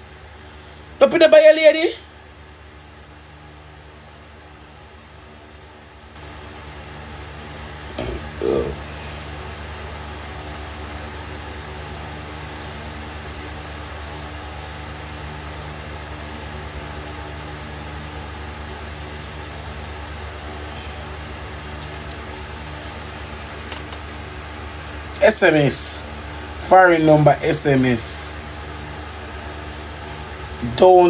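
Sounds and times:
steady low hum: 0.0s - 31.0s
background hiss: 19.4s - 31.0s
faint clicks: 23.5s - 24.0s.

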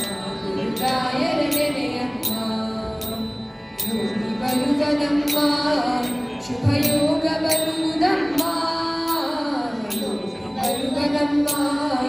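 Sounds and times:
children singing into microphones: 0.0s - 12.0s.

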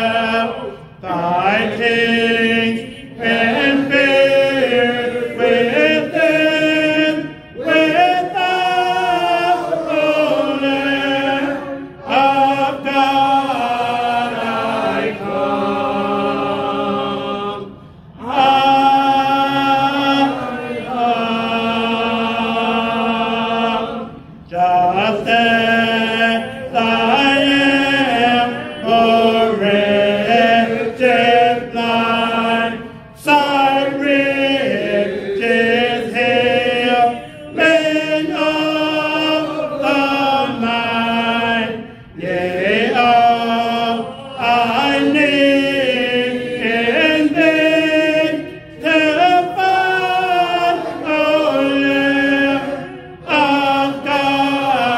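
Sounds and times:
man singing a hymn: 0.0s - 23.9s, 24.5s - 54.9s.

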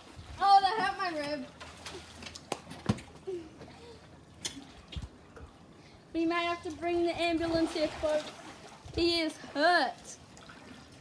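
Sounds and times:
faint pool water: 0.0s - 11.0s.

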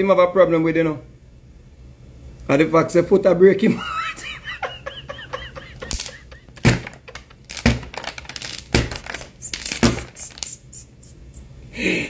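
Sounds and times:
man laughing: 3.7s - 7.4s.

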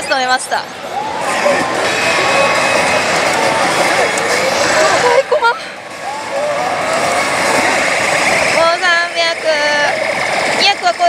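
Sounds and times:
din of gaming parlor: 0.0s - 11.0s
pitch-sliding effect: 0.8s - 11.0s.

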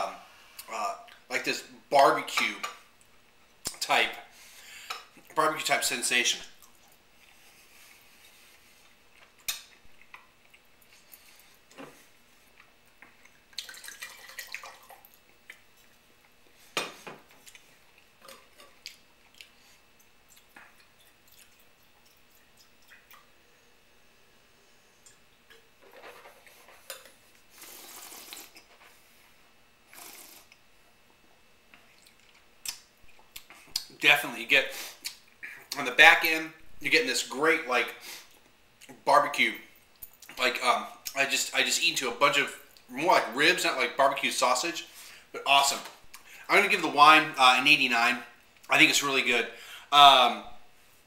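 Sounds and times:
slurping sips: 27.5s - 28.7s, 29.8s - 30.6s.

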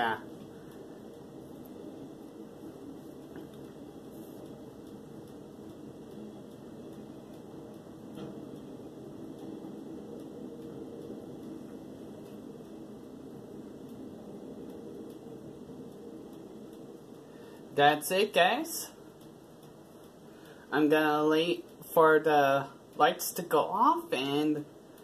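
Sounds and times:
electric fan whirring: 0.0s - 25.0s.

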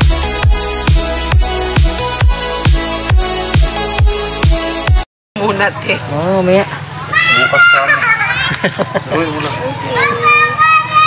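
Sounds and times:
child calling out: 7.1s - 8.6s, 9.7s - 11.0s.

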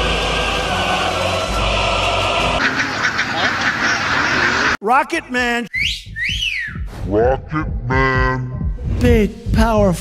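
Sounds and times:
ducks quacking: 2.0s - 4.8s.

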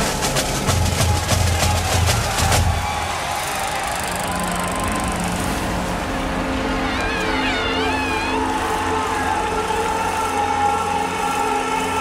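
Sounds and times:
snare drum march beat: 0.0s - 3.8s.

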